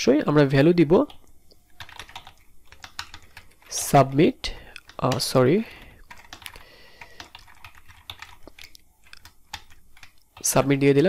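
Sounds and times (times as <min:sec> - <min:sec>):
typing on computer keyboard: 0:01.0 - 0:10.6.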